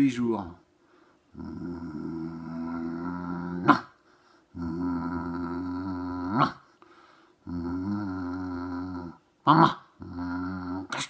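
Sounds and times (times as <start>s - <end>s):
man imitating dog growl: 1.3s - 6.7s, 7.4s - 11.0s.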